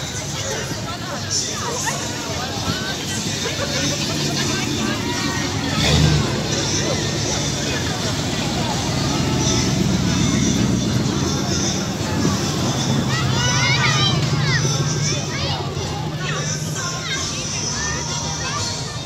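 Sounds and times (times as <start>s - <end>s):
car engines rumbling past: 0.0s - 19.0s
crowd chatter: 0.0s - 19.0s.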